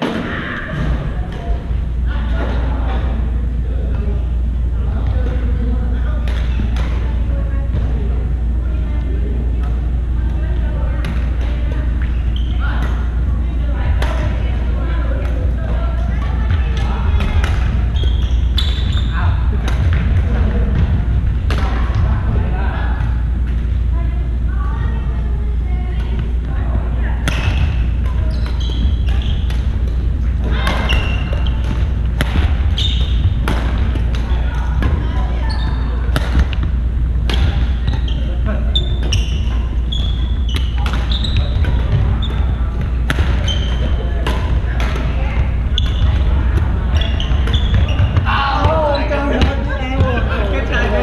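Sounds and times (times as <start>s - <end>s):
steady low hum: 0.0s - 51.0s
voices in hall: 0.0s - 51.0s
sneaker squeaks on hardwood: 12.0s - 12.8s, 16.5s - 20.0s, 27.3s - 29.6s, 30.5s - 34.4s, 35.0s - 36.6s, 37.4s - 44.1s, 45.0s - 49.6s
racket hitting shuttlecock: 27.2s - 35.0s, 40.1s - 46.2s.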